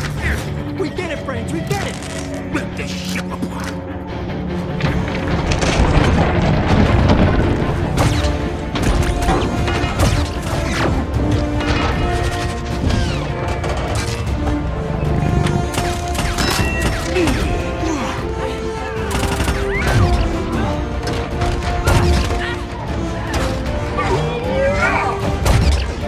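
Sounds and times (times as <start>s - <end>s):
loud film score: 0.0s - 26.0s.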